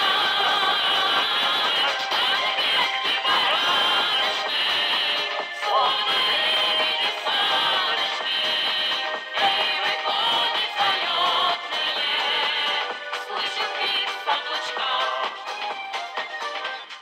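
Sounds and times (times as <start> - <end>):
accordion: 0.0 - 17.0
balalaika: 0.0 - 17.0.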